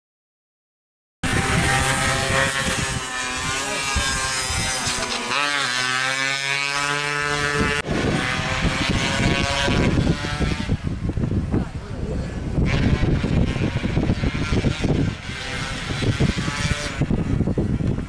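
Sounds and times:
two-stroke engine revving hard: 0:01.2 - 0:10.9, 0:12.6 - 0:17.5.

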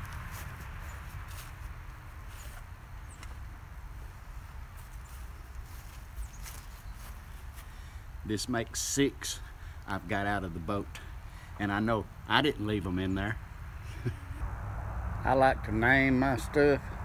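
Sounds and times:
steady low rumble: 0:09.4 - 0:17.0.

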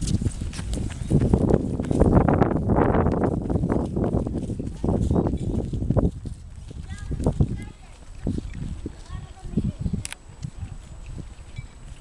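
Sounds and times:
footsteps on pavement: 0:00.0 - 0:12.0
wind rumbling on microphone: 0:00.0 - 0:12.0.

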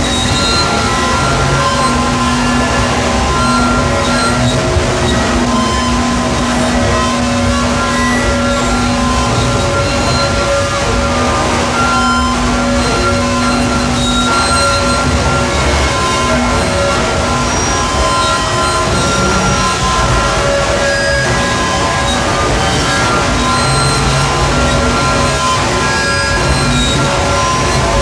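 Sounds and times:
held drone tones: 0:00.0 - 0:28.0
thick wash of noise: 0:00.0 - 0:28.0.

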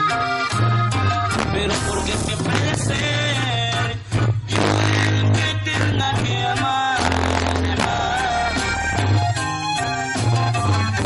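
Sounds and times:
accordion: 0:00.0 - 0:11.0
bajo sexto strumming: 0:00.0 - 0:11.0
drums: 0:00.0 - 0:11.0
electric bass: 0:00.0 - 0:11.0.

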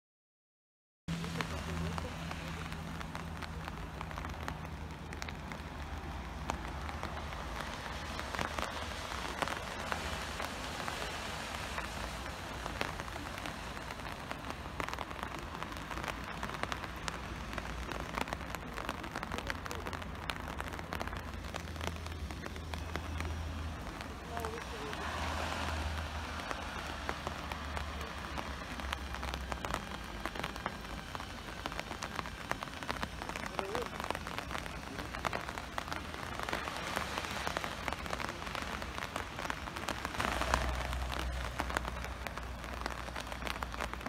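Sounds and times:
light rain pattering: 0:01.1 - 0:44.0.

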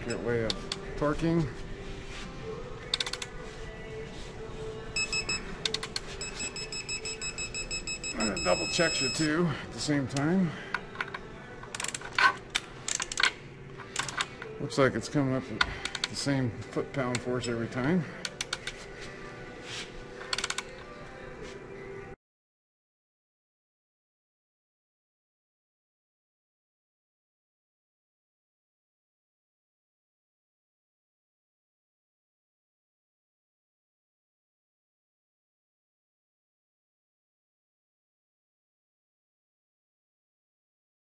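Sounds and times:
torque wrench beeping: 0:05.0 - 0:05.4, 0:06.2 - 0:09.4.

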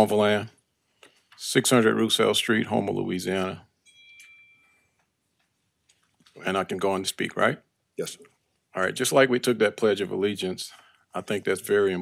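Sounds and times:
faint high chime: 0:02.9 - 0:05.0.

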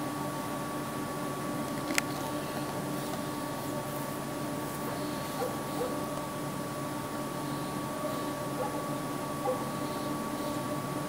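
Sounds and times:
faint hum: 0:00.0 - 0:11.0
distant bird calling: 0:04.9 - 0:06.2, 0:07.4 - 0:10.8.

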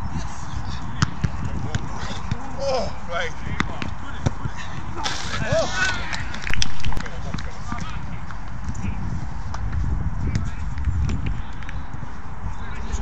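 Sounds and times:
ball kicks: 0:00.9 - 0:02.6, 0:03.5 - 0:08.9
players shouting: 0:01.9 - 0:08.1
steady low rumble: 0:02.7 - 0:13.0.

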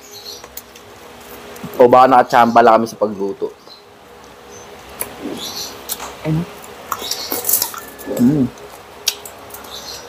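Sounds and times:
crispy pork crunching: 0:04.2 - 0:09.9.

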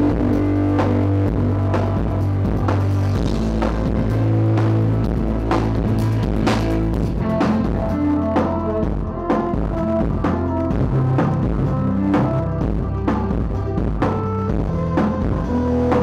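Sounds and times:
heavy bass: 0:00.0 - 0:16.0
keyboards: 0:00.0 - 0:16.0
steady drum beat: 0:00.0 - 0:16.0.

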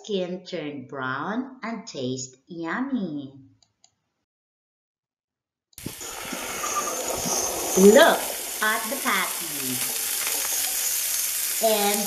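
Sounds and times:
meat sizzling on a grill: 0:05.8 - 0:12.0.

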